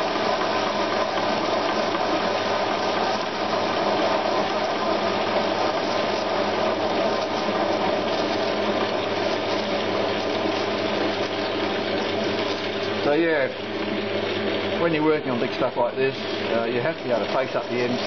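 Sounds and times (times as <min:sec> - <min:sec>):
metal lathe humming: 0:00.0 - 0:18.0.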